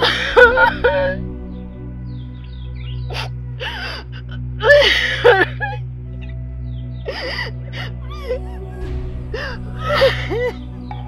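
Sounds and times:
woman sobbing: 0.0s - 1.3s, 3.1s - 5.9s, 7.0s - 10.8s.

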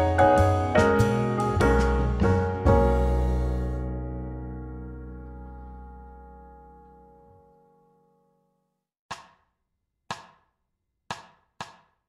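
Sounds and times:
keyboard chord: 0.0s - 8.5s.

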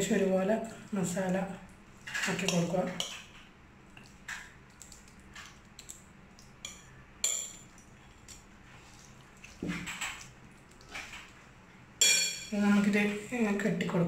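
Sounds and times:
spoon clinking on bowl: 12.0s - 12.5s.

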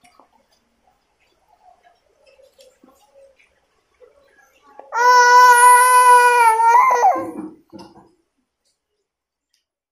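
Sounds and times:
baby squealing: 5.0s - 7.4s.

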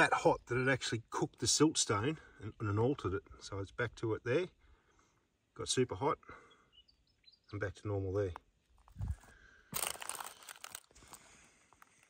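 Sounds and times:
footsteps crunching on rubble: 8.8s - 12.0s.

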